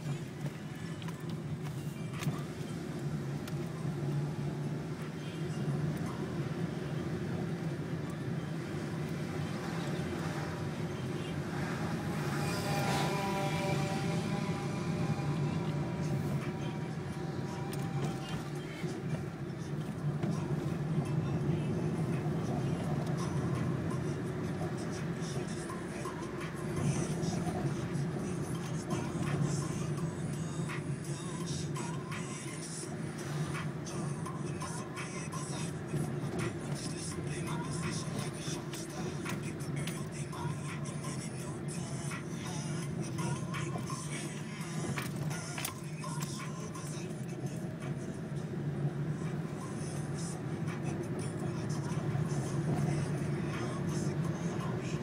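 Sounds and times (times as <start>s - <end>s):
car engine and road noise: 0.0s - 55.0s.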